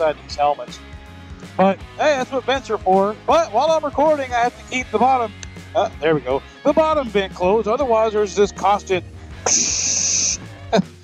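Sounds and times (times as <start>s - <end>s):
man hissing: 9.4s - 11.0s.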